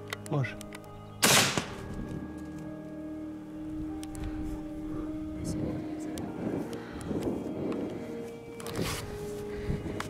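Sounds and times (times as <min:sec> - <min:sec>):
rifle shot: 0:01.2 - 0:01.9.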